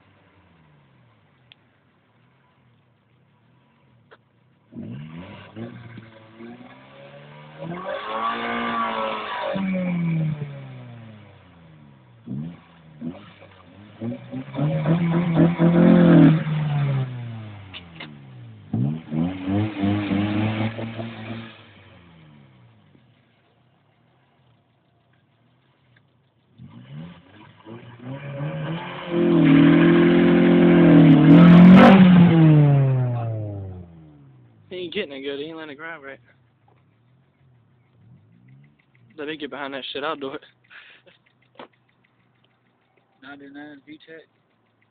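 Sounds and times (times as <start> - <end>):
car engine revving: 0.0 - 44.9.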